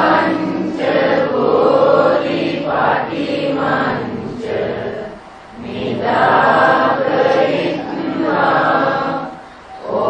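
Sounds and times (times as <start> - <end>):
voices chanting: 0.0 - 10.0.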